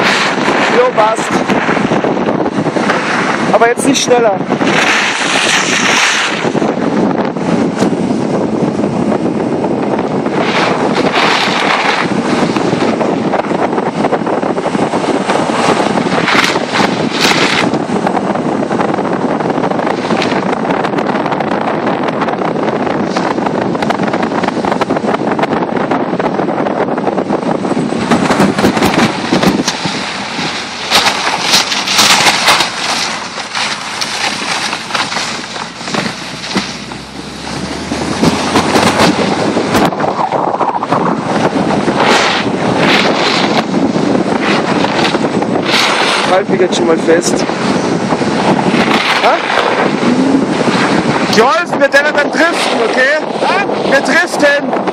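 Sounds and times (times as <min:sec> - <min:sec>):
car driving on snow: 0:00.0 - 0:54.9
wind buffeting microphone: 0:00.0 - 0:54.9.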